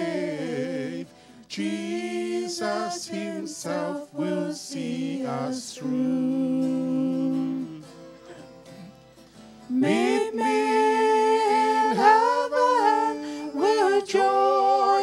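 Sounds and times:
group singing in harmony: 0.0 - 8.4, 9.7 - 15.0
acoustic guitar: 0.0 - 15.0.

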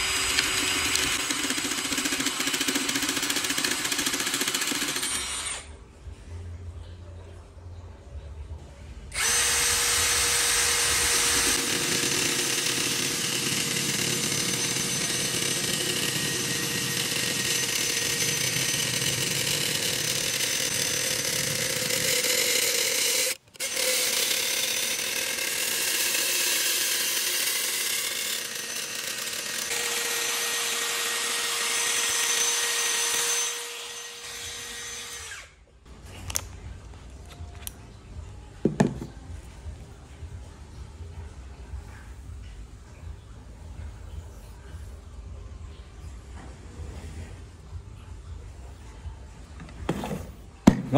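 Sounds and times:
drill motor whine: 0.0 - 5.7, 9.1 - 35.5
cutter rasping wood: 9.2 - 35.4.

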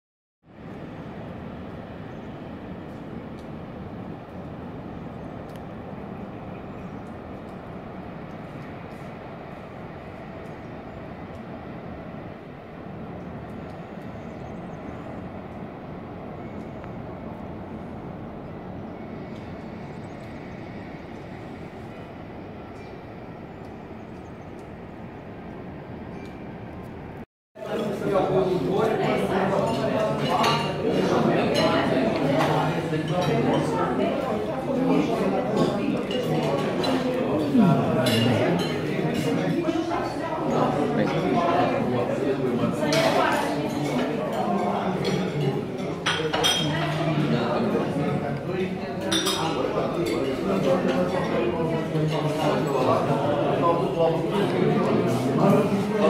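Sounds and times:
steady outdoor rushing noise: 0.5 - 50.2.

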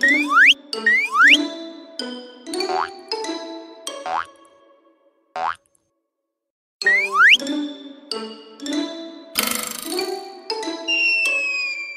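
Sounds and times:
cartoon spring boing: 4.1 - 4.3, 5.4 - 5.6.

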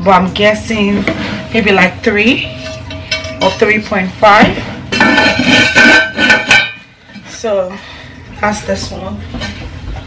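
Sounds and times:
metallic ringing tone: 1.3 - 4.3
lid clattering on metal pot: 4.9 - 6.8.

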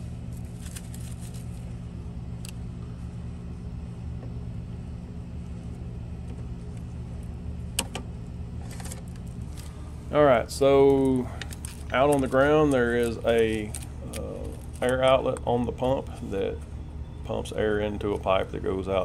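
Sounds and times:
low machine hum: 0.0 - 19.0.

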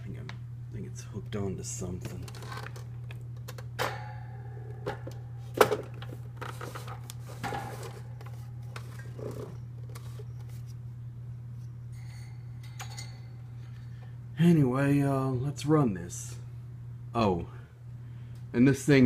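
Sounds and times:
steady low hum: 0.0 - 19.0.

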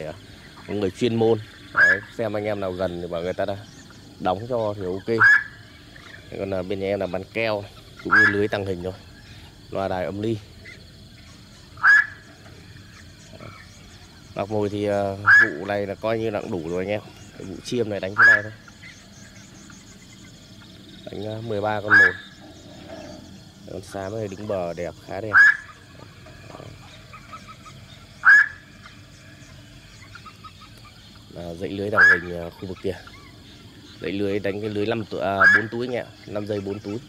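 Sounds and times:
heron harsh call: 1.5 - 2.2, 5.1 - 6.3, 8.0 - 8.6, 11.6 - 13.6, 15.2 - 15.7, 18.0 - 18.7, 21.8 - 23.2, 25.3 - 28.8, 31.9 - 32.3, 35.4 - 35.9.

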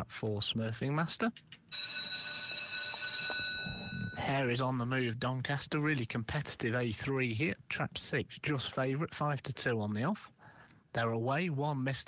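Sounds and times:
high-pitched buzzer tone: 1.8 - 4.3.

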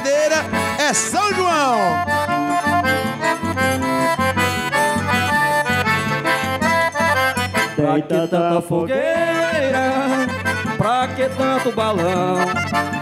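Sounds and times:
accordions playing melody: 0.0 - 13.0
person singing: 7.8 - 13.0.

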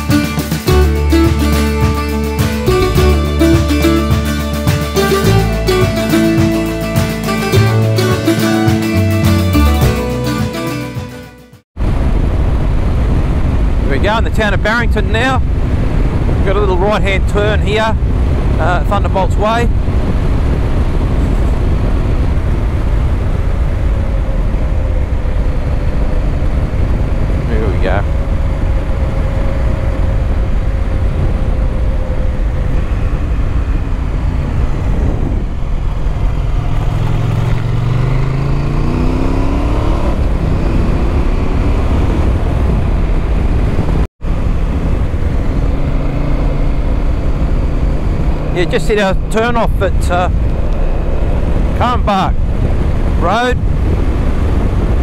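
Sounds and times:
motorcycle engine: 0.0 - 13.8, 19.7 - 55.0
road noise: 0.0 - 55.0
wind rush: 11.8 - 55.0.

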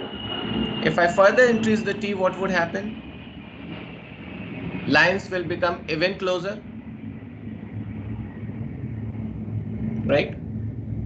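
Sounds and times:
man speaking: 0.8 - 2.9, 4.9 - 6.6, 10.1 - 10.4.

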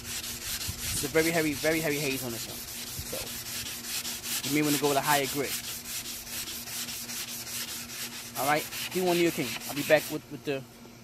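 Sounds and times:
emery board scratching plastic: 0.0 - 10.2.

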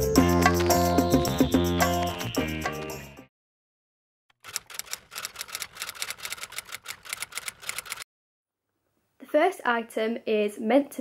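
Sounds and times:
fast keyboard typing clicks: 4.4 - 8.0.

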